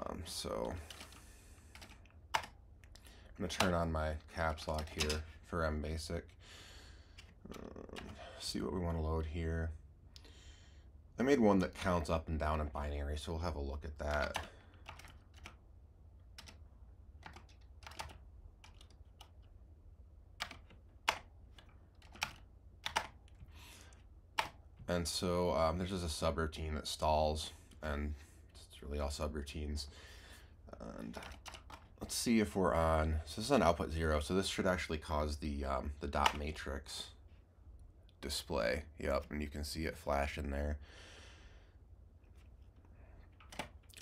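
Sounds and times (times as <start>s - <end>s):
low steady hum: 0.0s - 44.0s
computer keyboard typing: 0.6s - 3.8s, 4.6s - 5.2s, 7.2s - 8.3s, 14.0s - 15.6s, 16.3s - 16.6s, 17.2s - 19.5s, 20.4s - 23.4s, 24.3s - 24.6s, 31.1s - 32.0s, 43.3s - 44.0s.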